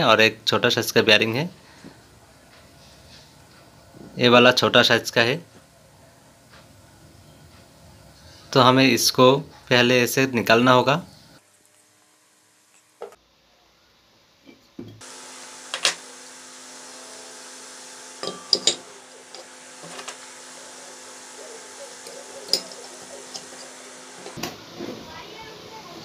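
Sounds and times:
steady low hum: 0:15.0 - 0:24.5.

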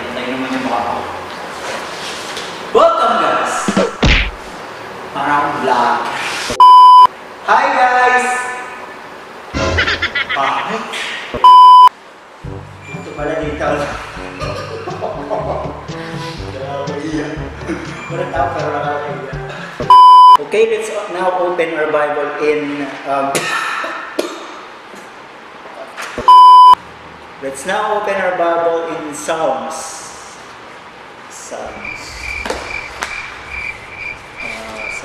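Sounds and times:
electronic bleep: 0:06.6 - 0:07.1, 0:11.4 - 0:11.9, 0:12.8 - 0:14.1, 0:17.7 - 0:18.7, 0:19.8 - 0:20.4, 0:26.2 - 0:26.8
background music with bass line: 0:12.4 - 0:20.1.

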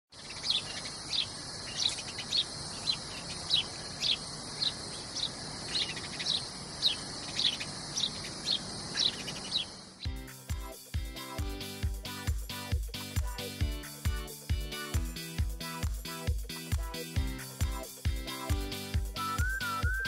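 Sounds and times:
bird chirping: 0:00.1 - 0:10.2
high-pitched insect chorus hiss: 0:00.2 - 0:20.0.

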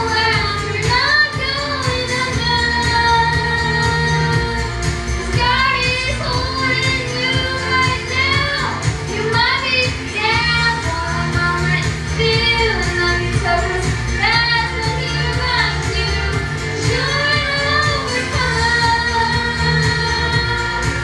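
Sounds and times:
girl singing into microphone: 0:00.0 - 0:21.0
recorded backing track: 0:00.0 - 0:21.0.

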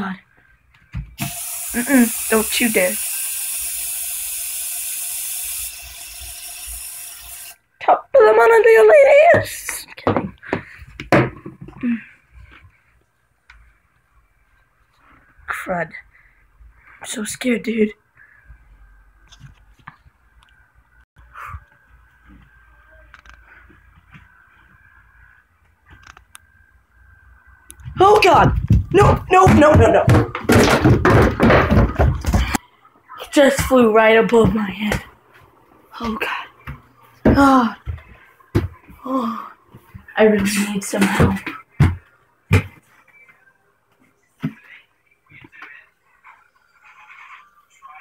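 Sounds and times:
aerosol spray hissing: 0:01.2 - 0:07.6.

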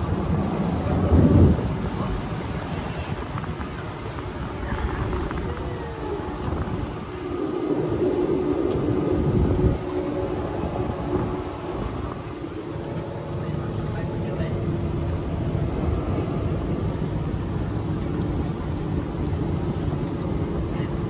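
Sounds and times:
boat motors humming: 0:00.0 - 0:21.0
wind rumble on microphone: 0:00.0 - 0:21.0.

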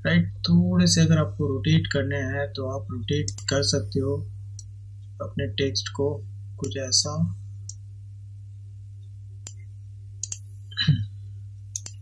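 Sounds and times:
low electrical hum: 0:00.0 - 0:12.0
computer mouse clicks: 0:09.4 - 0:10.5, 0:11.7 - 0:12.0.

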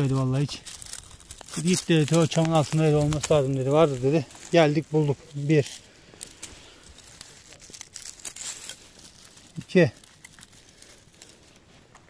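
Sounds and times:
dry leaves and twigs crackling: 0:00.0 - 0:12.0.

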